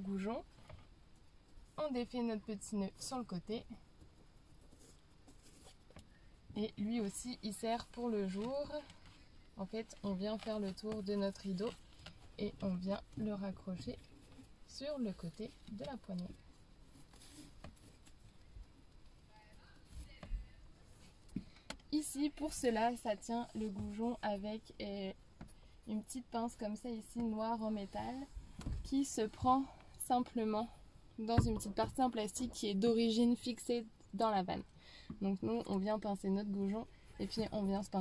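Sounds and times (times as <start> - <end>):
faint fabric handling: 0.0 - 38.0.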